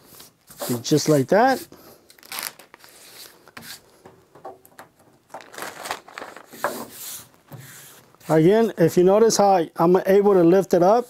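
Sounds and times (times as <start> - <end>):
hands rubbing application tape: 0.1 - 1.7, 2.3 - 3.9, 6.3 - 8.8.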